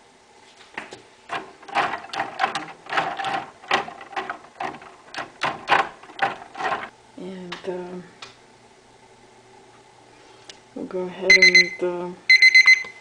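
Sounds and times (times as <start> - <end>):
rapid small clicks and knocks: 1.3 - 6.9.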